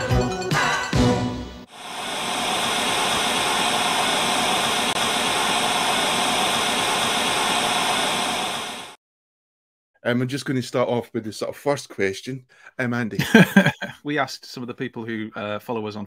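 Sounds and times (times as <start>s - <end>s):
static-like hiss: 1.7s - 9.0s.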